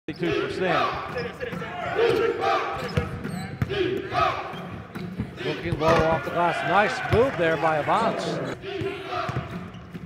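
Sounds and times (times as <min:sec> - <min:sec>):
arena crowd noise: 0:00.1 - 0:10.0
commentator talking: 0:05.4 - 0:08.6.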